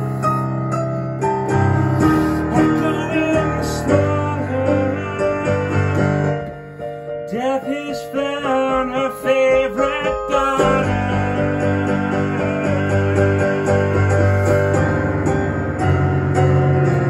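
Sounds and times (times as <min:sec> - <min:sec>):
digital piano playing: 0:00.0 - 0:17.0.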